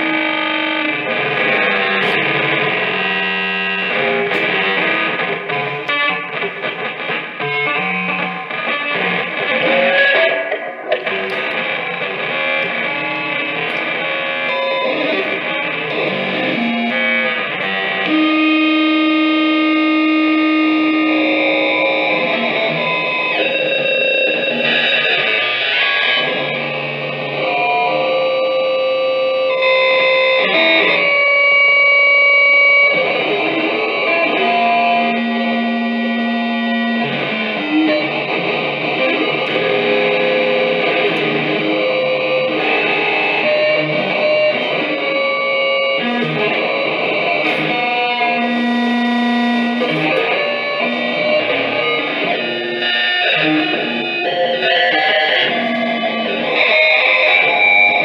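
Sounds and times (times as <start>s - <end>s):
prepared electric guitar improvisation: 0.0s - 58.0s.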